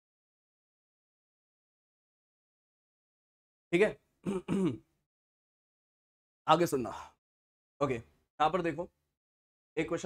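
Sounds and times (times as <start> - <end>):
man clearing his throat: 4.2 - 4.9.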